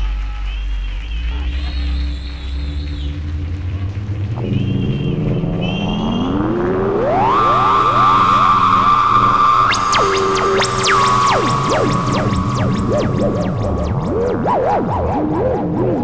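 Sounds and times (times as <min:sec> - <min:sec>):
synthesizer music with pitch glides: 0:00.0 - 0:16.0.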